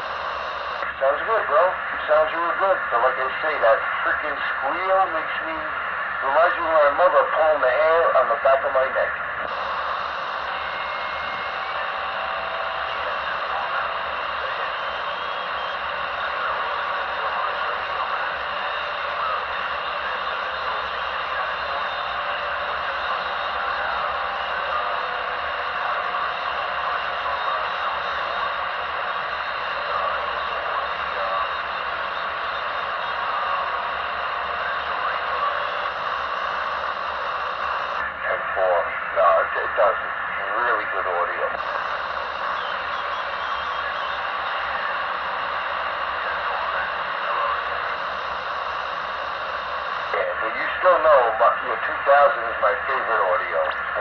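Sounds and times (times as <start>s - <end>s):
faint voice over radio: 0.0s - 54.0s
radio static hiss: 0.0s - 54.0s.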